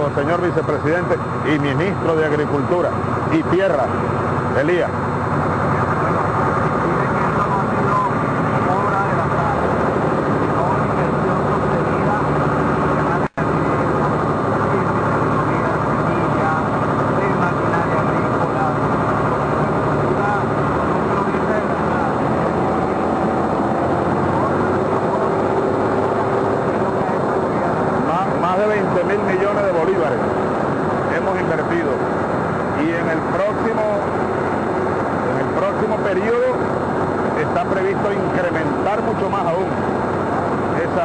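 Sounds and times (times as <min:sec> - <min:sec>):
vehicle engine running: 0:00.0 - 0:41.0.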